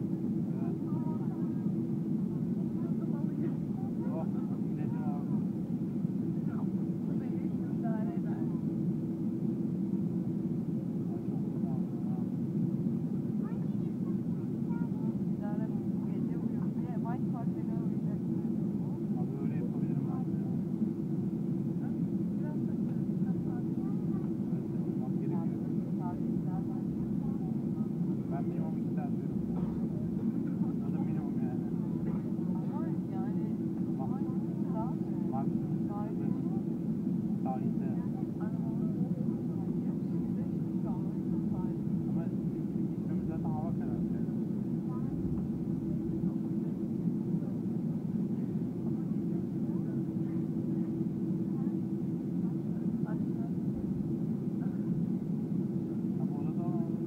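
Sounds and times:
jet engines droning: 0:00.0 - 0:57.0
passenger chatter: 0:00.0 - 0:57.0.

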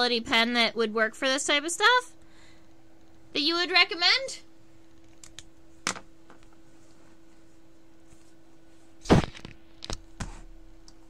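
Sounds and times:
faint steady hum: 0:00.0 - 0:11.0
loud thunk: 0:09.0 - 0:09.5.

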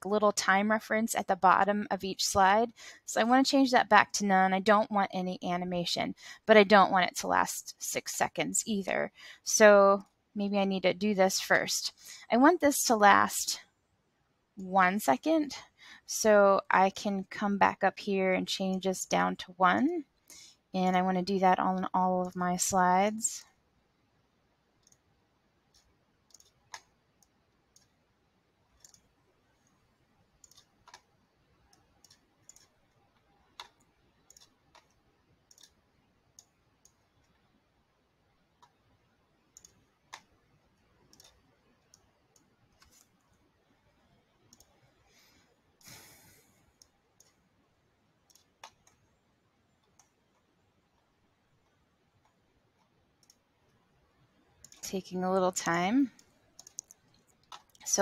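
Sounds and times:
computer mouse clicks: 0:22.2 - 0:22.4, 0:24.8 - 0:25.1, 0:25.7 - 0:28.0, 0:28.7 - 0:29.8, 0:30.4 - 0:37.5, 0:38.5 - 0:47.4, 0:48.2 - 0:49.1, 0:49.7 - 0:53.8, 0:54.6 - 0:54.9, 0:56.2 - 0:57.9.

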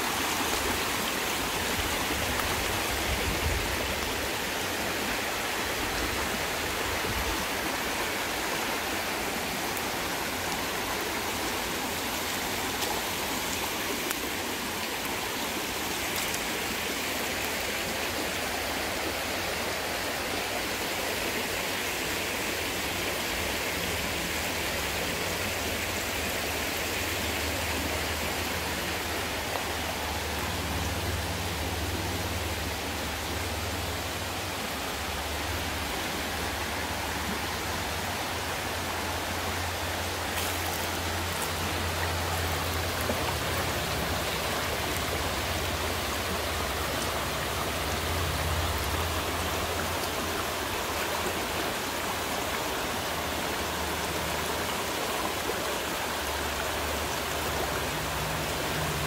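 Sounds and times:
creek running over stones: 0:00.0 - 0:59.0.

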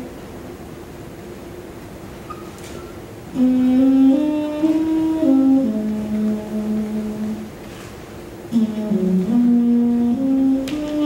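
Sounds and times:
flugelhorn slow melody: 0:03.3 - 0:07.6, 0:08.5 - 0:11.0.

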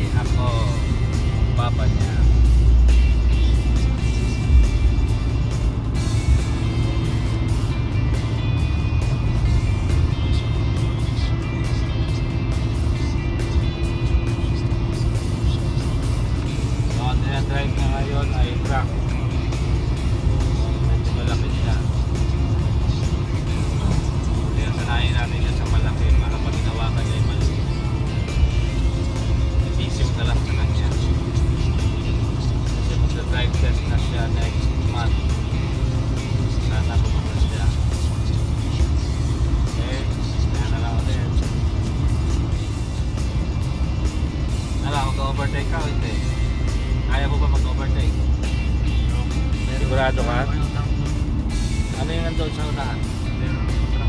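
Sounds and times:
background music: 0:00.0 - 0:54.0
road and engine rumble: 0:00.0 - 0:54.0.

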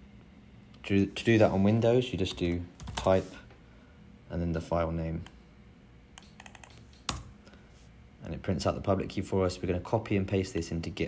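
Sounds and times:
keyboard and mouse clicks: 0:06.2 - 0:07.3.

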